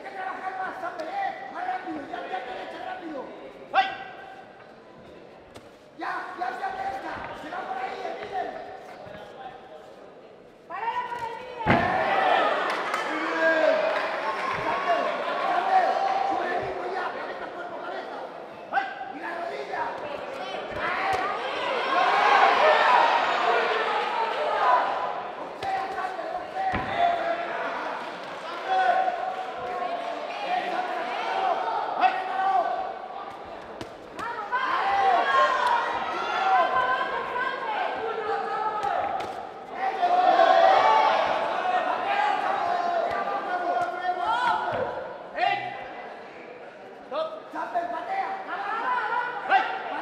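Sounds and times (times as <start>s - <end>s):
loud shouting voices: 10.7s - 33.3s, 34.2s - 45.8s.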